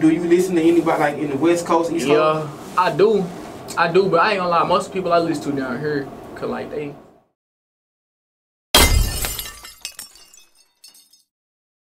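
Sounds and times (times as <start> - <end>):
glass shattering: 8.8 - 11.3.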